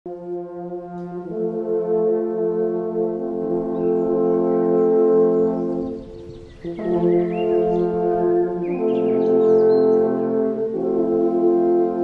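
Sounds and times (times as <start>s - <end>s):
alphorns playing in harmony: 0.1s - 12.0s.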